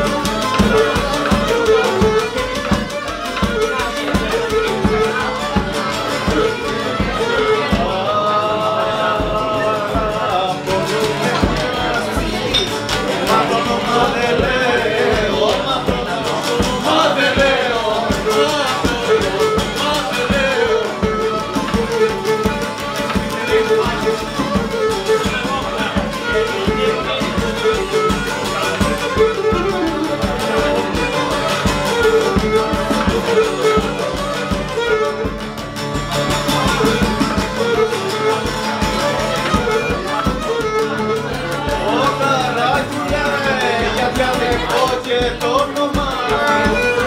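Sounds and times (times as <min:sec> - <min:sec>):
barrel drum beat: 0:00.0 - 0:08.1, 0:09.0 - 0:47.0
bowed lyra melody: 0:00.0 - 0:44.9
strummed lute: 0:00.0 - 0:47.0.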